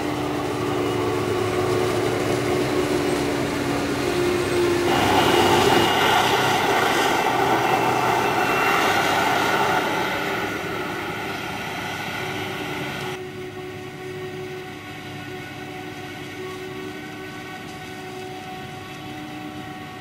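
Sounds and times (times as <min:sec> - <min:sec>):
forage harvester droning: 0:00.0 - 0:20.0.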